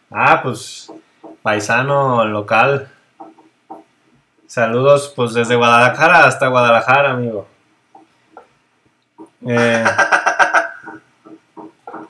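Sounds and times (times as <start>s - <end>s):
man voicing held eh: 9.5s - 10.0s.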